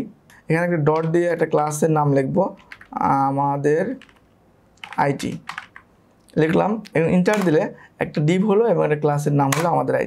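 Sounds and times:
computer keyboard keystrokes: 0:02.5 - 0:03.0, 0:04.0 - 0:05.9, 0:07.3 - 0:07.6.

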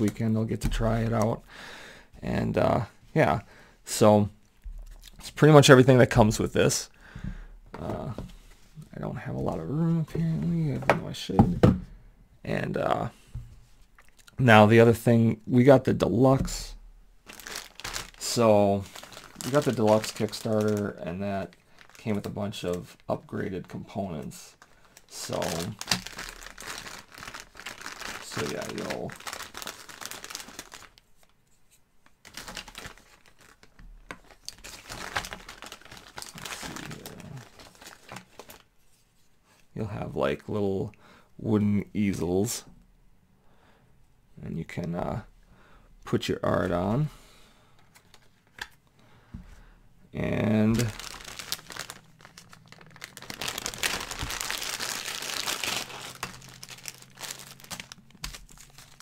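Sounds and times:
plastic packaging crinkling: 0:17.2 - 0:31.4, 0:32.0 - 0:38.7, 0:50.3 - 0:59.0.

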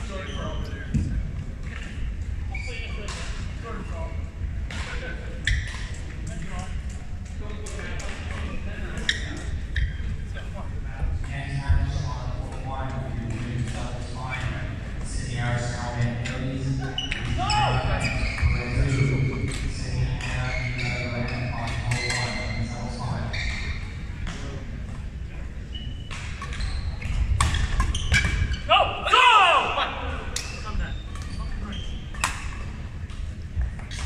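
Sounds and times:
shoes squeaking on court: 0:00.0 - 0:03.4, 0:05.4 - 0:06.2, 0:08.0 - 0:10.3, 0:13.4 - 0:28.7, 0:30.3 - 0:34.0
low hall hum: 0:00.0 - 0:34.0.

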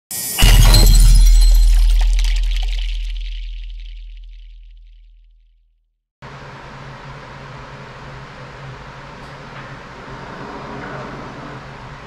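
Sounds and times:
glass shattering: 0:00.2 - 0:04.5
heavy low boom: 0:00.4 - 0:05.1.

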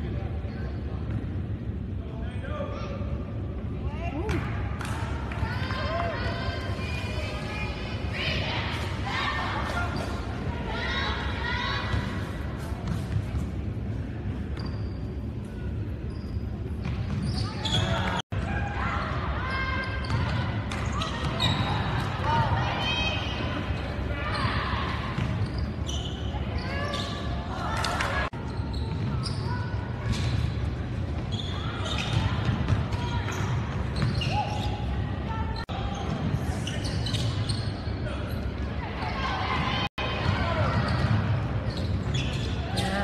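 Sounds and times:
indistinct chatter in a gymnasium: 0:00.0 - 0:43.0
sneakers squeaking on court: 0:11.7 - 0:18.2, 0:19.1 - 0:39.2, 0:40.2 - 0:43.0
voices calling and shouting: 0:17.1 - 0:43.0.

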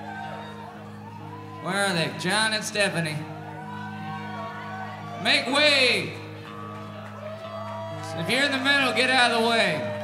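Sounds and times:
faint crowd noise: 0:00.0 - 0:10.0.

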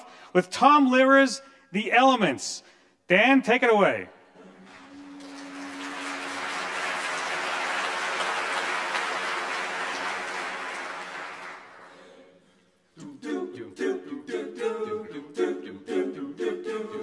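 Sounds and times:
audience applauding: 0:04.6 - 0:12.0.

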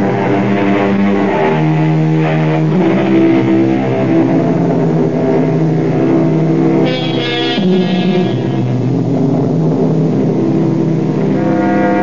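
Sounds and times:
instrumental music sustained chords: 0:00.0 - 0:12.0.

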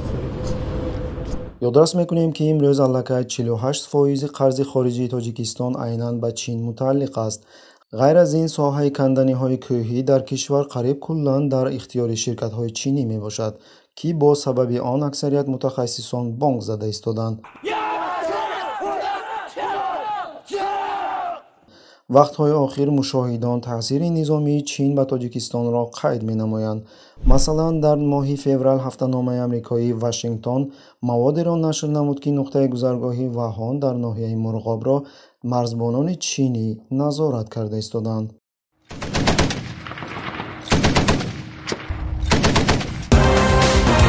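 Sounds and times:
soldiers shouting in unison: 0:17.5 - 0:21.5
heavy machine gun bursts: 0:38.9 - 0:43.2.

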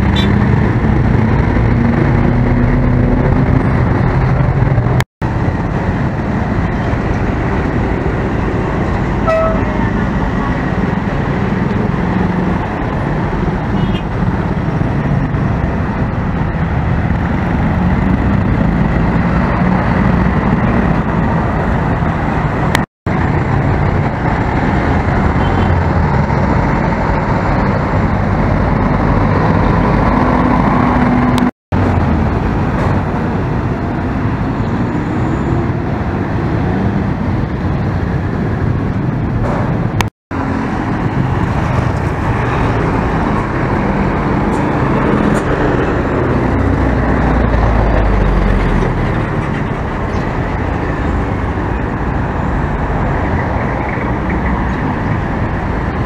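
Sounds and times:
passing road traffic: 0:00.0 - 0:56.0.

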